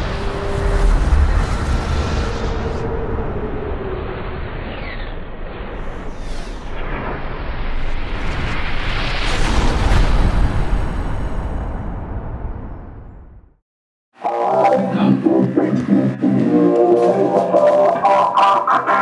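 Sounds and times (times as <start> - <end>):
whooshes: 0.0 - 13.4
deep rumble: 0.0 - 13.6.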